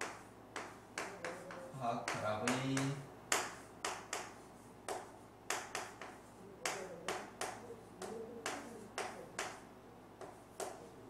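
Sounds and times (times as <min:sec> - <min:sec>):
chalk scraping on chalkboard: 0:00.0 - 0:02.9, 0:03.5 - 0:09.6.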